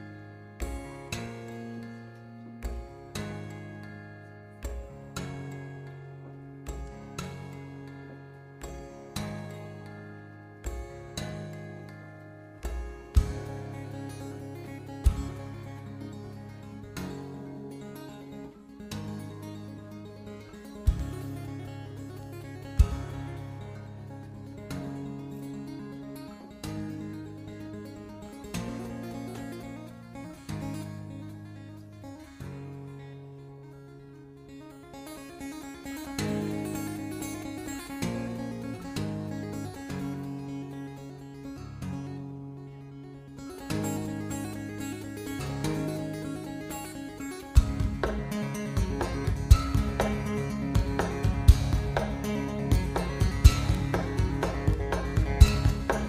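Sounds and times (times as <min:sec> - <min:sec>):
acoustic guitar tapping: 0:00.0 - 0:33.0, 0:34.9 - 0:41.0, 0:43.4 - 0:56.0.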